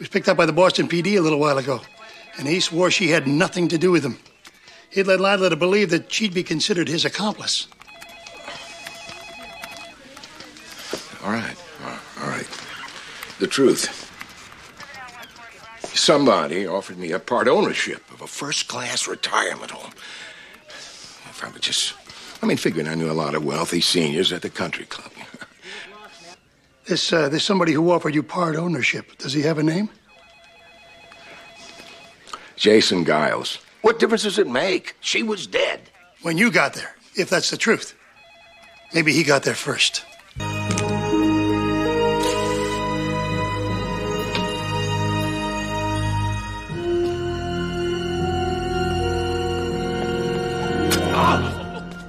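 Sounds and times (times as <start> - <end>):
desk telephone ringing: 0.9 - 3.7, 7.8 - 11.5, 30.0 - 32.3, 38.0 - 52.0.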